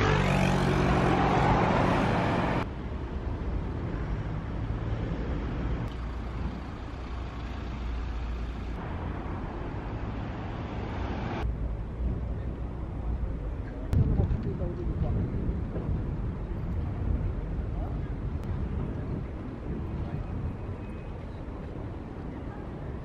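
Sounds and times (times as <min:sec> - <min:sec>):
vehicle engine hum: 0:00.0 - 0:14.0
steady traffic background: 0:00.0 - 0:23.0.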